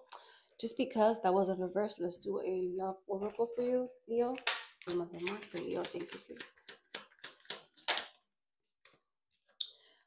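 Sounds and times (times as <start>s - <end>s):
cards being shuffled: 4.4s - 8.2s.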